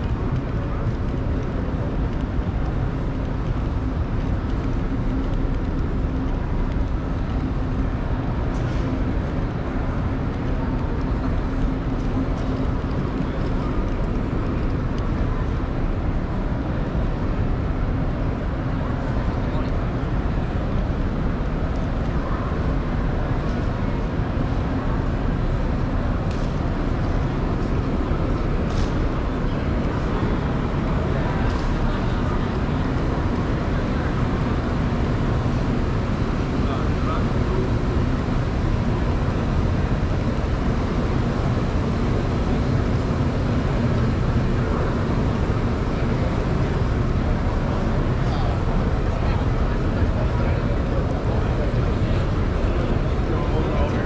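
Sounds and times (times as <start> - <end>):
continuous low rumble: 0.0 - 54.0
indistinct crowd chatter: 0.0 - 54.0.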